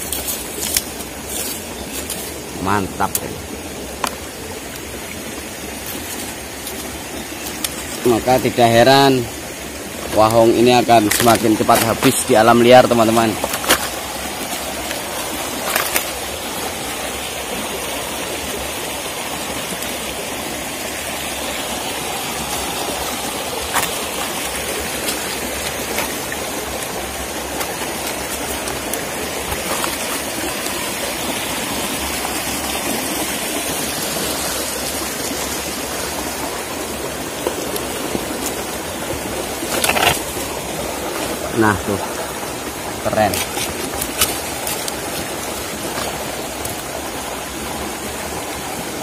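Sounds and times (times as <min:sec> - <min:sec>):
stream water over rocks: 0:00.0 - 0:49.0.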